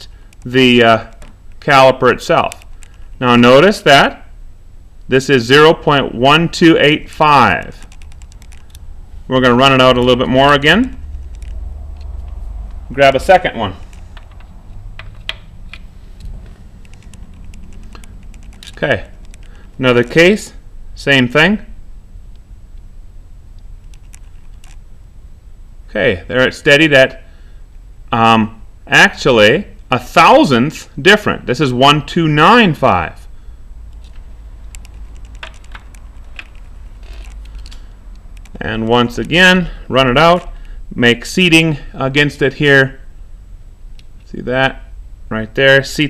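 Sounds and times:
low steady hum: 0.0 - 46.0.

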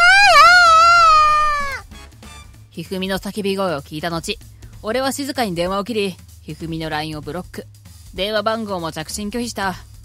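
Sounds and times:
woman screaming: 0.0 - 1.8
faint background music: 1.9 - 10.0.

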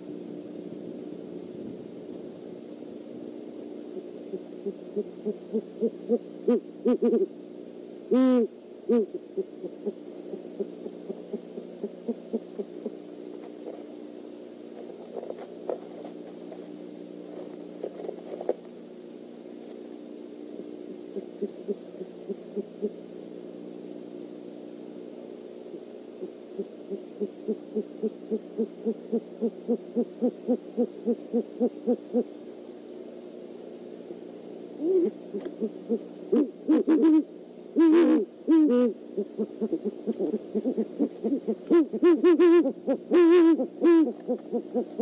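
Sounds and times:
owl hooting: 3.8 - 7.4, 8.0 - 13.9, 20.9 - 23.1, 26.1 - 32.4, 34.8 - 45.0
owl complex calls: 4.3 - 7.4, 8.1 - 13.8, 21.1 - 23.0, 26.2 - 32.3, 34.8 - 45.0.

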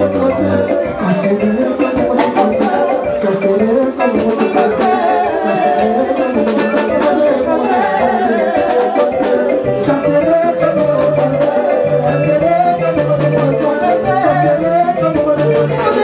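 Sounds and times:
live band music: 0.0 - 16.0
man singing into a microphone: 0.0 - 16.0
steady drum beat: 0.0 - 16.0.

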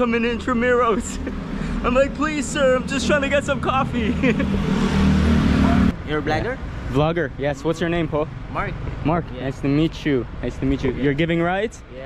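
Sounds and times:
vehicle engine humming: 0.0 - 11.8
road noise rushing: 0.0 - 12.0.

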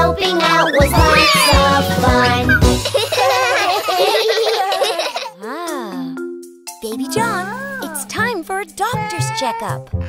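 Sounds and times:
cartoon children laughing: 0.2 - 5.4.

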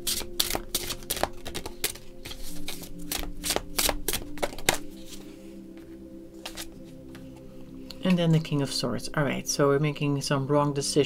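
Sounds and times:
cards being shuffled: 0.0 - 5.2, 6.4 - 7.4
soft background music: 0.0 - 11.0.

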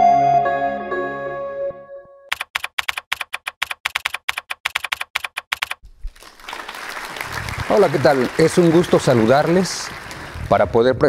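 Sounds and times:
rapid sharp clicks: 2.3 - 5.8.

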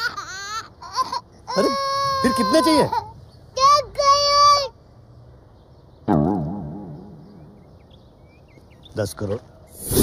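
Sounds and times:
young child crying: 0.1 - 4.7.

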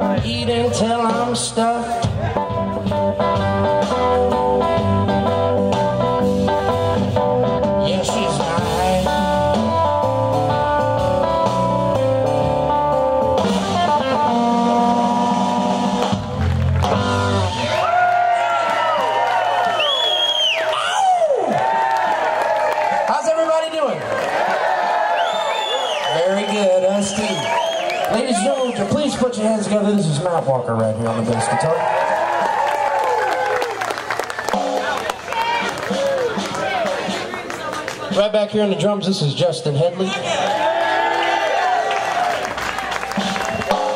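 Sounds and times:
electric guitar bending notes: 0.0 - 17.8
blues band playing: 0.0 - 20.8, 21.6 - 43.9.

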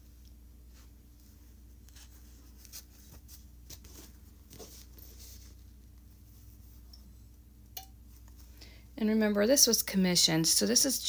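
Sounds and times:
fabric rustling: 0.0 - 6.9
low steady hum: 0.0 - 11.0.

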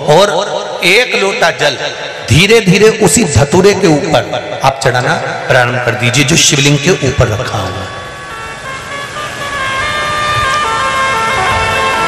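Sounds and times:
reedy organ-like chords: 5.2 - 12.0.

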